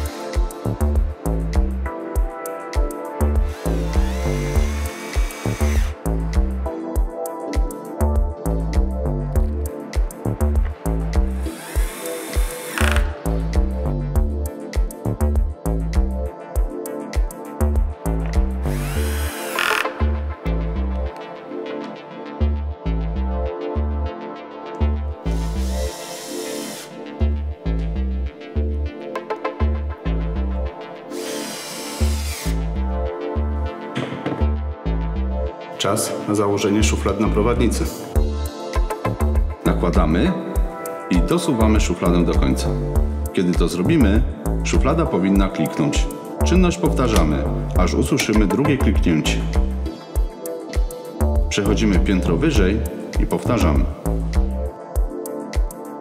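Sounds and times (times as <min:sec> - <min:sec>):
cordless drill whining: 0:00.0 - 0:00.8, 0:03.4 - 0:06.0, 0:11.4 - 0:13.2, 0:18.6 - 0:20.1, 0:25.3 - 0:27.0, 0:31.1 - 0:32.6
background music with beat: 0:00.0 - 0:36.3, 0:37.0 - 0:56.0.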